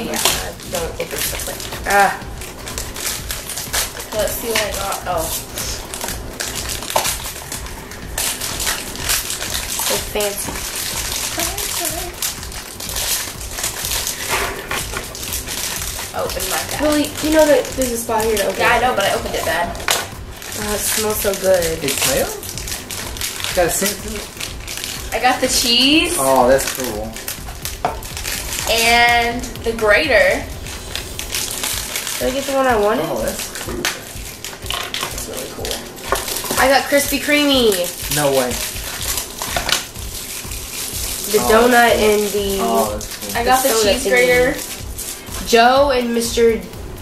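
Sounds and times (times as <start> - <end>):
foil bags crinkling and tearing: 0.0 - 46.4.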